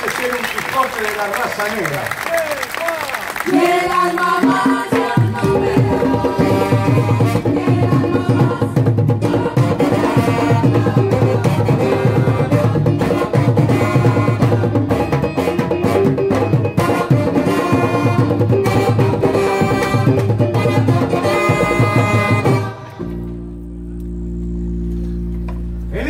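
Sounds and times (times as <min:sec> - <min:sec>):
live band playing: 0:03.2 - 0:25.9.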